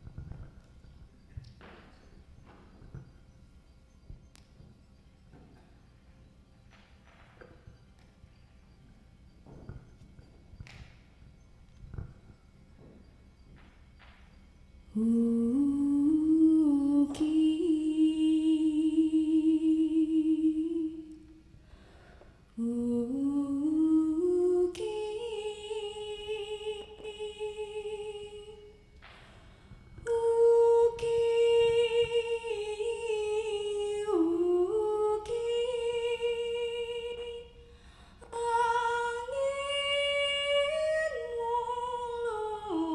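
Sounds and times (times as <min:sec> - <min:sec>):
woman humming: 0:14.9 - 0:21.4, 0:22.6 - 0:28.8
woman singing unaccompanied: 0:14.9 - 0:21.4, 0:22.6 - 0:29.0, 0:29.9 - 0:37.6, 0:38.2 - 0:42.9.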